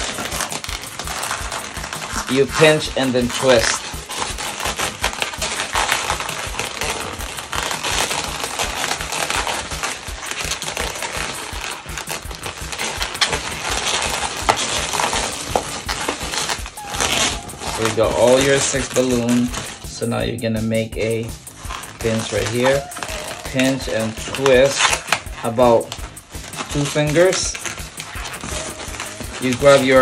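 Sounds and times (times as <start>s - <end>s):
balloons squeaking and rubbing: 0.0s - 30.0s.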